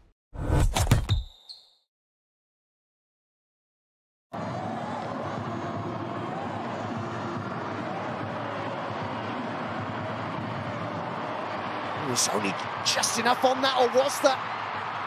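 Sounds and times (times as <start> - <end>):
stadium crowd noise: 4.3 - 15.0.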